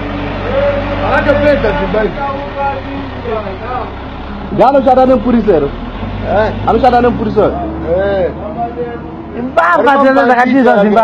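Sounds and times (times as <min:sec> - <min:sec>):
voices talking: 0:00.0 - 0:11.0.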